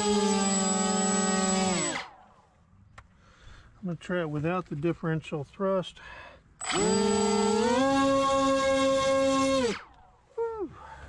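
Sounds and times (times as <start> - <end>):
electric motors whining: 0.0 - 2.1, 6.6 - 9.9.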